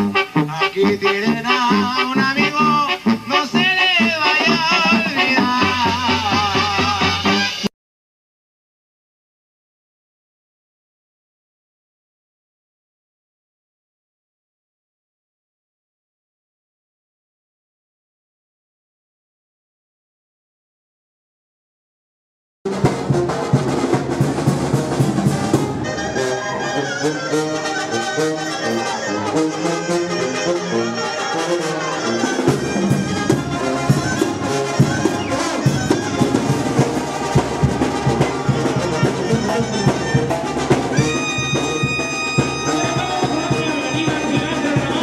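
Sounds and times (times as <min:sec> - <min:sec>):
brass band music with percussion: 0:00.0 - 0:07.7, 0:22.7 - 0:45.0.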